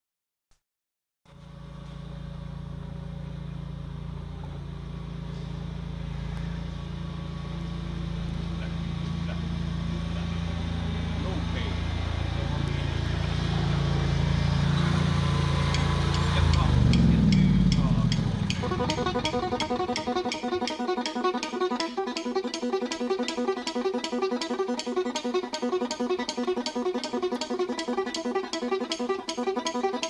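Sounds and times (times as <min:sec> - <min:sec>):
engine running steadily: 0:01.3 - 0:30.0.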